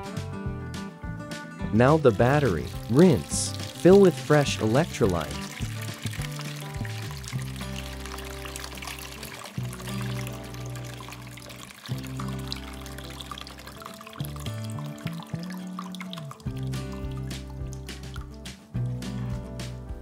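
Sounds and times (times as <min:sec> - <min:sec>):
background music: 0:00.0 - 0:20.0
water pouring into plastic bowl: 0:02.0 - 0:18.9.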